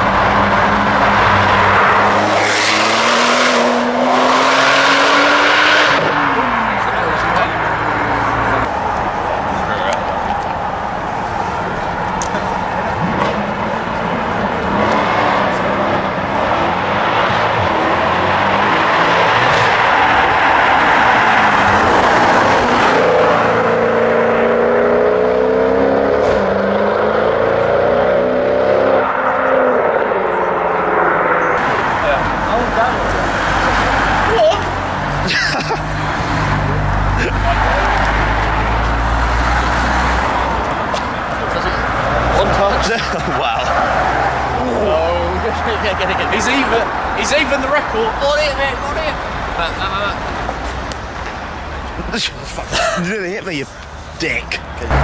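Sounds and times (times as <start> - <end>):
car engine passing by: 0.0 - 9.9, 35.8 - 51.0
crowd noise: 0.0 - 55.0
road noise: 0.0 - 55.0.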